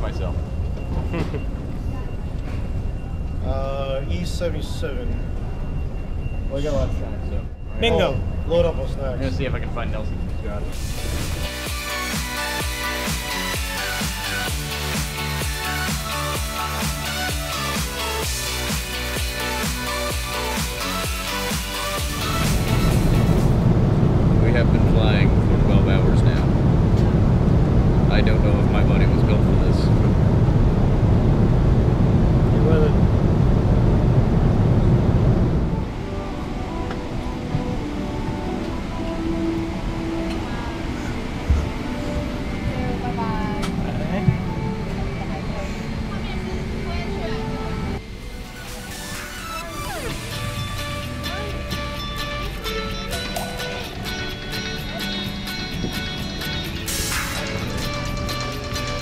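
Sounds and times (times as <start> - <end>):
background music: 10.8 - 24.6, 35.4 - 59.0
jet cabin rumble: 22.0 - 52.8
faint voices: 39.9 - 50.4.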